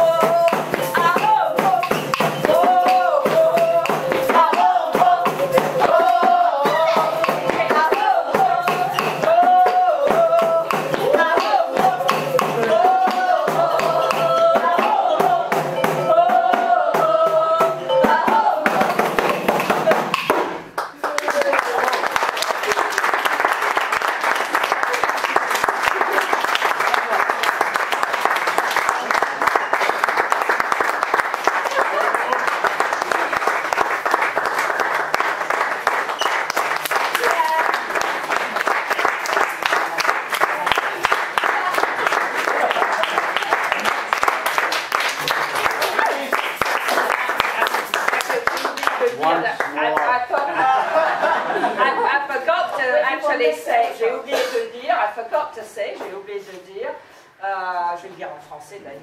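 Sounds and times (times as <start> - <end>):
group singing: 0.0 - 20.3
audience applauding: 20.7 - 50.5.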